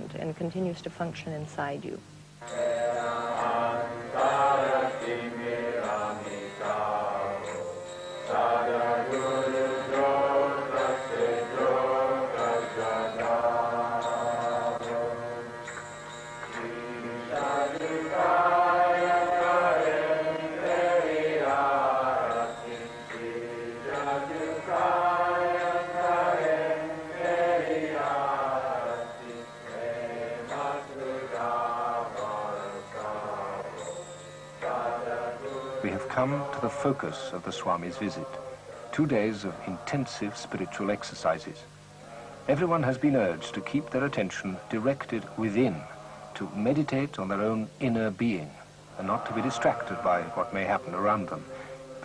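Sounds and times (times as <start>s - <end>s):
devotional chanting: 2.4s - 52.0s.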